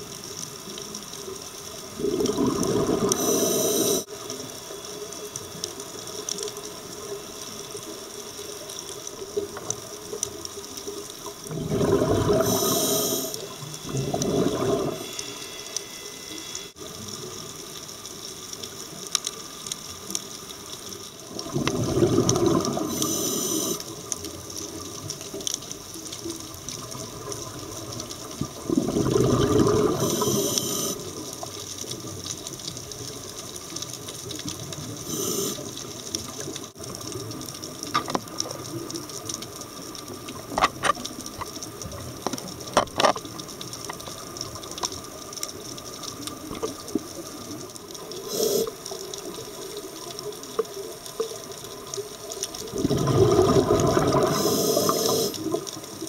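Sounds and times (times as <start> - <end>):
steady underwater hiss: 0.0 - 56.0
exhaled bubbles underwater: 1.8 - 4.1, 10.6 - 15.3, 21.2 - 33.3, 34.0 - 56.0
regulator hiss: 2.9 - 7.1, 12.3 - 17.9, 22.8 - 24.1, 29.9 - 31.5, 34.9 - 36.2, 48.0 - 49.3, 54.2 - 55.7.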